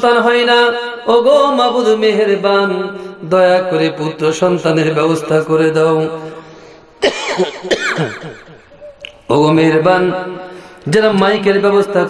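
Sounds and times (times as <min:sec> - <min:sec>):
man coughing into a microphone: 0:07.0 - 0:08.9.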